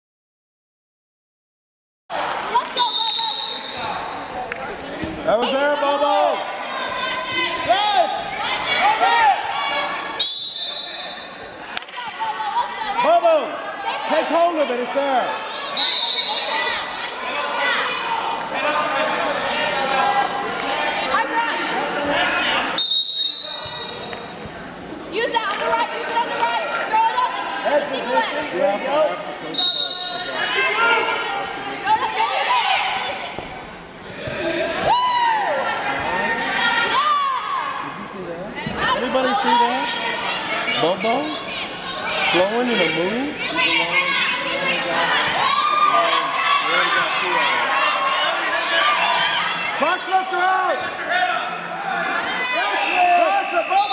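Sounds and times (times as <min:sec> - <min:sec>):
people shouting and calling out: 0:02.1 - 0:24.1, 0:25.1 - 0:33.4, 0:34.0 - 0:53.9
echoing voices in hall: 0:02.1 - 0:53.9.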